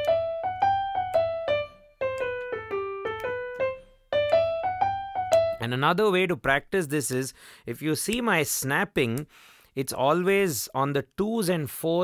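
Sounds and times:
digital piano playing a scale: 0:00.0 - 0:06.0.

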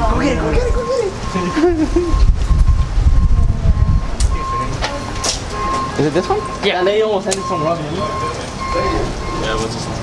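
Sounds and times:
wind buffeting microphone: 0:00.0 - 0:05.9.

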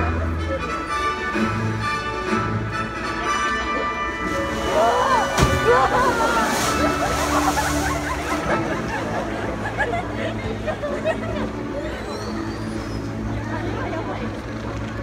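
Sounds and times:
crowd exclaiming and chattering: 0:02.8 - 0:15.0
water splash: 0:04.3 - 0:09.2.

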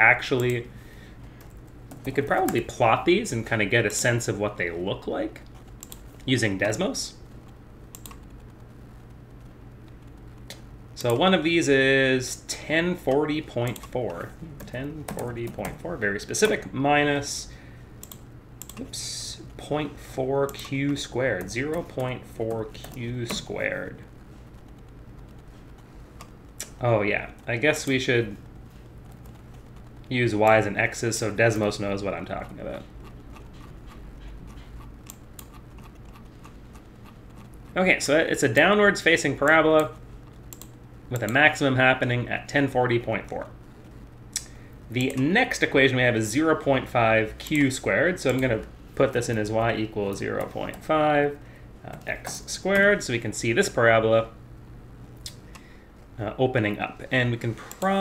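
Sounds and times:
low steady hum: 0:00.0 - 0:58.0
computer clicks: 0:00.3 - 0:00.7, 0:05.4 - 0:06.3, 0:07.4 - 0:08.7, 0:13.0 - 0:16.7, 0:18.0 - 0:19.0, 0:20.4 - 0:23.6, 0:31.6 - 0:37.7, 0:39.4 - 0:41.6.

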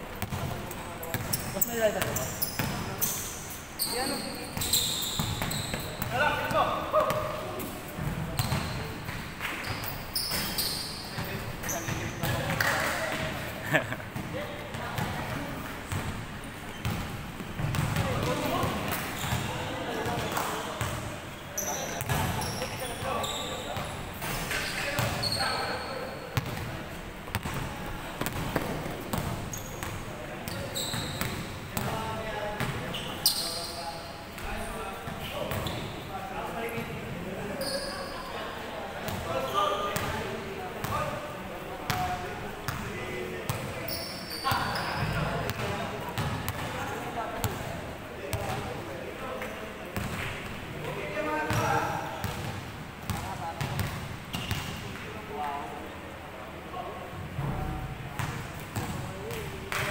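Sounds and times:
basketball bouncing: 0:01.1 - 0:01.4, 0:16.8 - 0:18.3, 0:27.3 - 0:27.6, 0:28.2 - 0:29.9
short high squeaks: 0:02.2 - 0:06.0, 0:09.6 - 0:11.9, 0:30.5 - 0:31.2.

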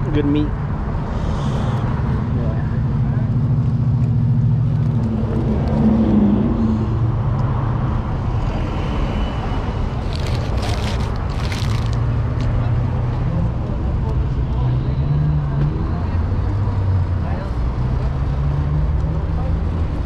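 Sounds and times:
street traffic: 0:00.0 - 0:20.0
low engine hum: 0:00.6 - 0:18.4
paper wrappers crinkling: 0:10.0 - 0:12.0.

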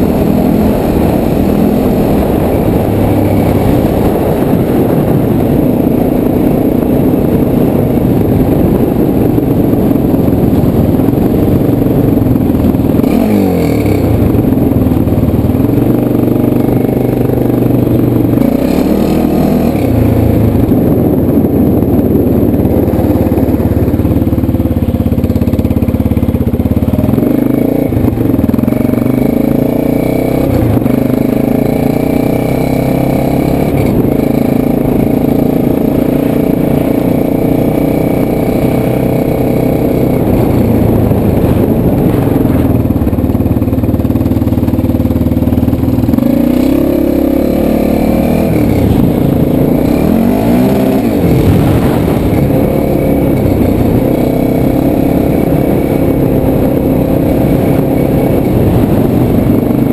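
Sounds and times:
quad engine running: 0:00.0 - 0:59.9.

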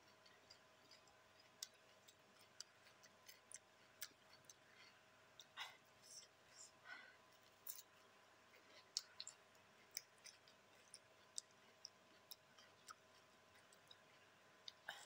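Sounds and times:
chewing clicks and smacks: 0:00.0 - 0:06.4, 0:07.3 - 0:15.0.

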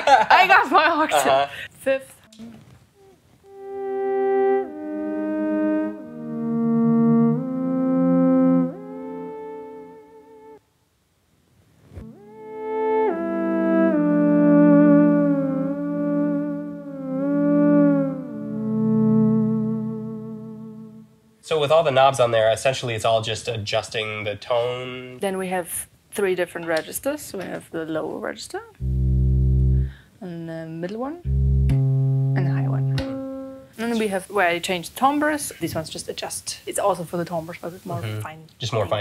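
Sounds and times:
theremin with harmony notes: 0:03.5 - 0:10.6, 0:12.0 - 0:21.2, 0:28.8 - 0:30.0, 0:31.3 - 0:33.7.

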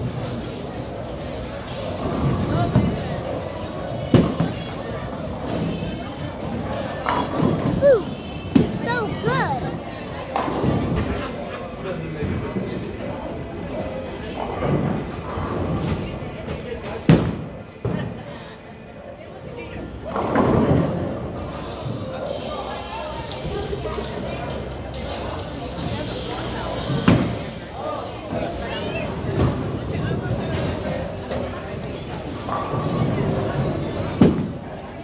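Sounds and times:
people chattering: 0:00.0 - 0:35.0.

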